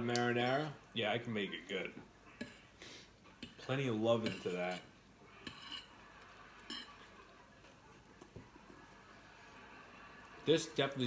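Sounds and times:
fork clinking on plate: 4.2 - 6.0, 6.6 - 7.0.

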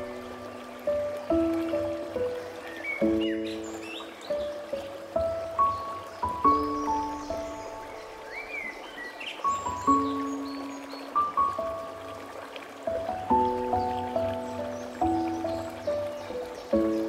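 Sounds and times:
birds chirping: 0.0 - 17.0
gentle solo piano: 0.0 - 17.0
running stream: 0.0 - 17.0.

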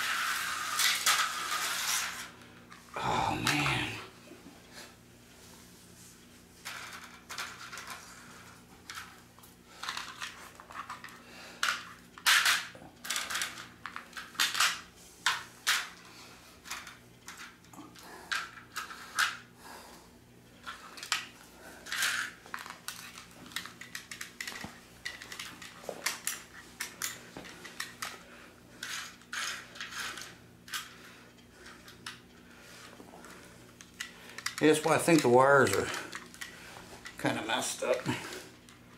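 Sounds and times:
plastic slot cars clicking on track: 0.0 - 2.3.

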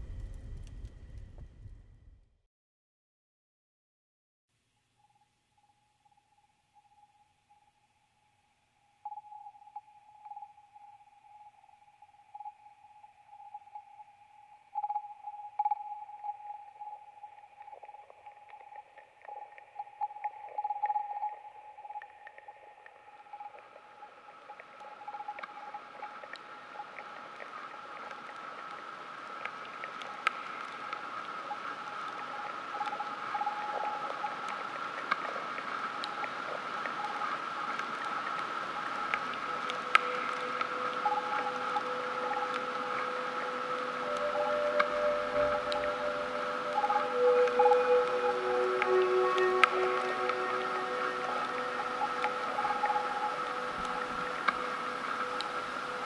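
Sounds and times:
faint crackles: 14.8 - 56.0
high wavering drone: 39.4 - 56.0
higher drone: 39.4 - 56.0.

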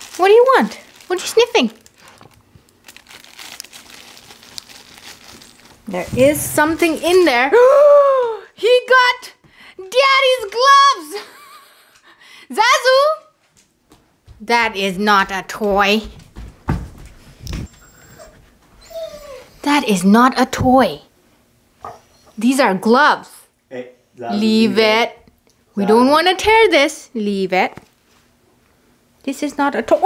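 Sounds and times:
rustling and crinkling in basket: 0.0 - 7.5
soft bump: 5.9 - 7.0, 16.1 - 17.7
dog whimpering: 17.6 - 19.6.

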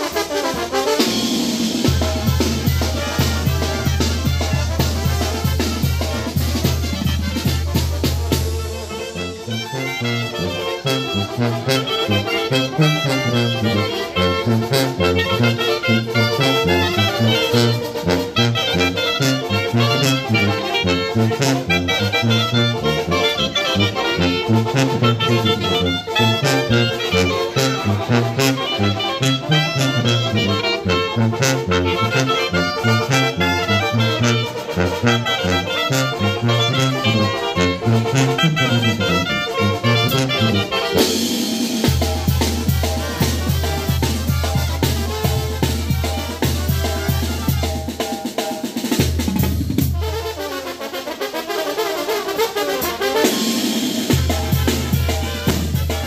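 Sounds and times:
tuba bass line: 0.0 - 51.0, 51.7 - 56.0
brass band playing: 0.0 - 56.0
drum strikes: 53.5 - 56.0.

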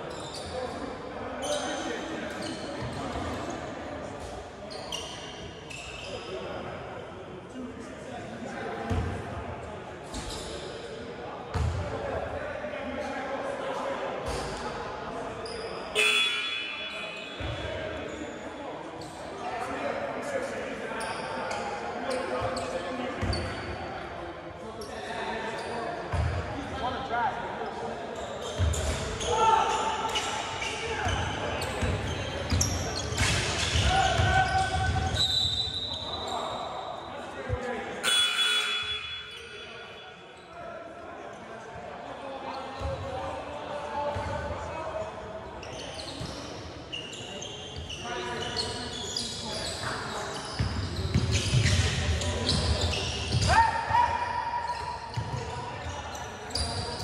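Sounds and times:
players' voices in a hall: 0.0 - 57.0.

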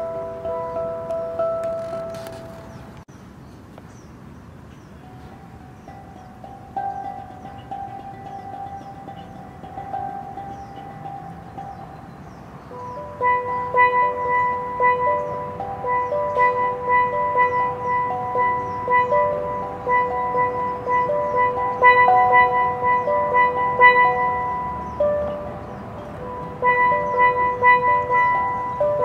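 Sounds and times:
steel pan melody: 0.0 - 3.0, 4.9 - 29.0.

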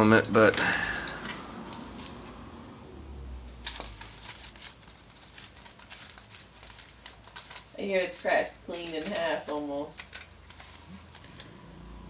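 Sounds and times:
plastic bag rustling: 3.6 - 11.6.

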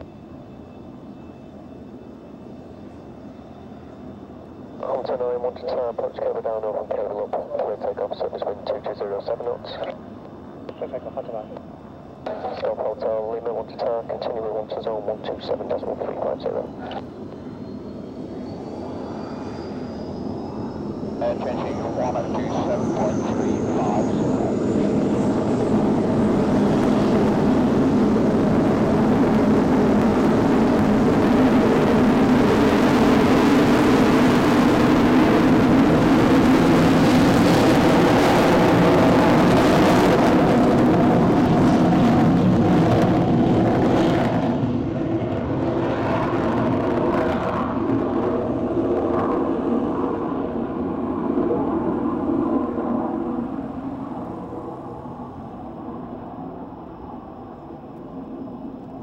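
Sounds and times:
aircraft engines at take-off: 0.0 - 59.0.

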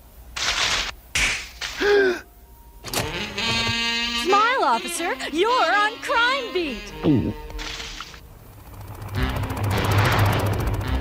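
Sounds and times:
held musical chord: 8.2 - 11.0.

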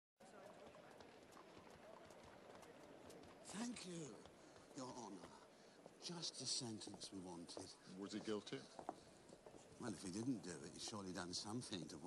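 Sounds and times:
horse hooves on cobbles: 0.2 - 9.8
murmur of distant voices: 0.2 - 12.0.

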